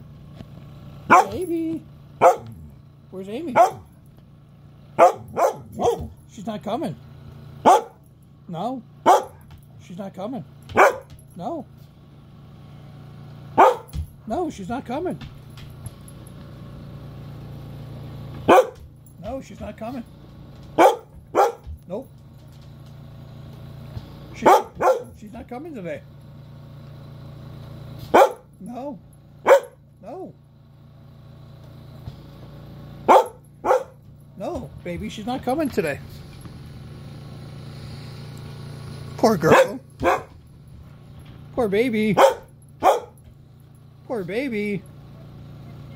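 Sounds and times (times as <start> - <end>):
dog barking: 1.1 - 1.5, 2.2 - 2.7, 3.5 - 3.9, 5.0 - 6.2, 7.6 - 8.0, 9.0 - 9.5, 10.7 - 11.1, 13.6 - 14.0, 18.5 - 18.9, 20.8 - 21.7, 24.3 - 25.2, 28.1 - 28.5, 29.4 - 29.8, 33.1 - 34.0, 39.4 - 40.4, 42.2 - 43.2.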